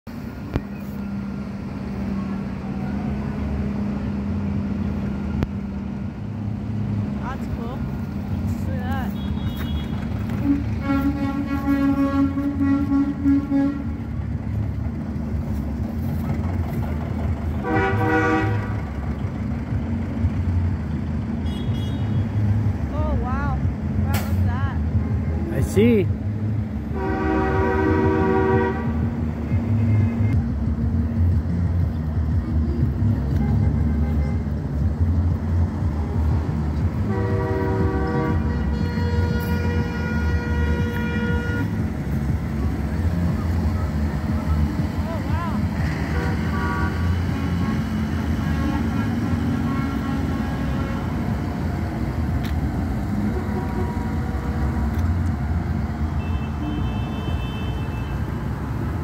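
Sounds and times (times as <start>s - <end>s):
tractor engines rumbling: 0.0s - 59.0s.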